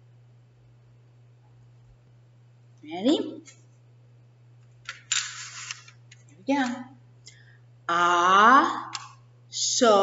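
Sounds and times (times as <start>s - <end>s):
tiles scraping on rack: 5.2s - 5.8s.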